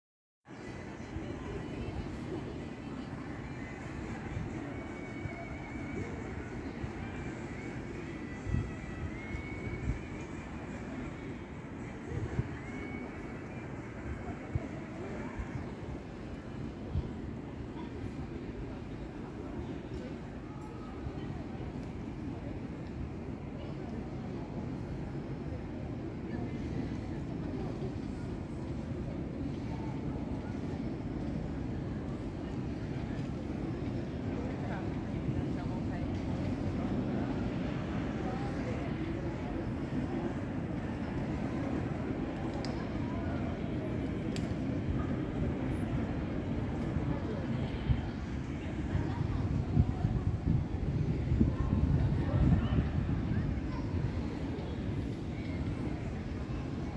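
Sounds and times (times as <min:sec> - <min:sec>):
low city rumble: 0:00.4 - 0:56.9
faint voices of passers-by: 0:00.5 - 0:56.9
faint high whine: 0:00.6 - 0:49.6.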